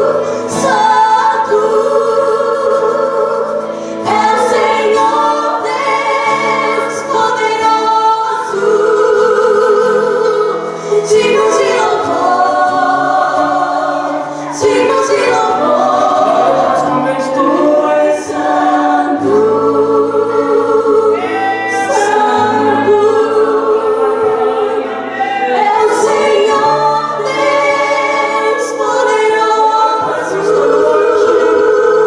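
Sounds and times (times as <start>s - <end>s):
women singing gospel song: 0.0s - 32.0s.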